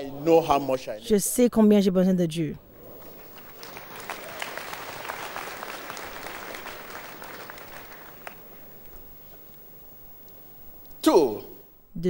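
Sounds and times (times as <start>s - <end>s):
congregation applauding: 2.7s - 10.6s.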